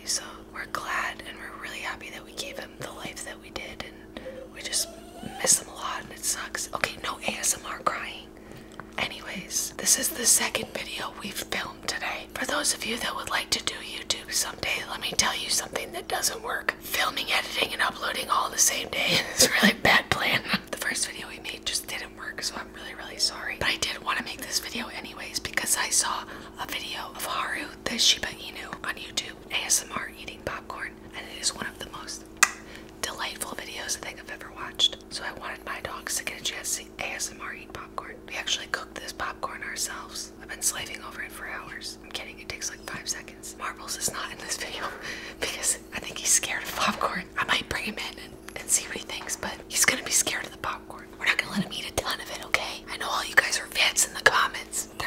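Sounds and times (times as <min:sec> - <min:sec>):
woman whispering: 0:00.0 - 0:32.2, 0:33.0 - 0:55.0
low hum: 0:00.0 - 0:55.0.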